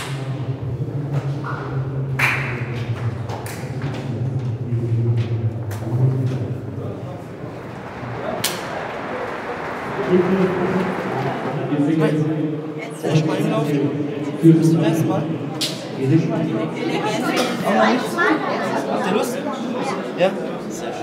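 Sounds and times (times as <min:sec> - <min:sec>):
indistinct voices echoing: 0:00.0 - 0:21.0
steady low hum: 0:04.1 - 0:14.6.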